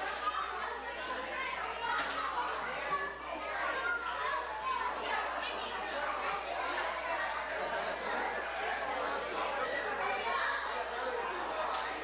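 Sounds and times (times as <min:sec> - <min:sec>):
children's voices: 0:00.0 - 0:12.0
overlapping guest chatter: 0:00.0 - 0:12.0.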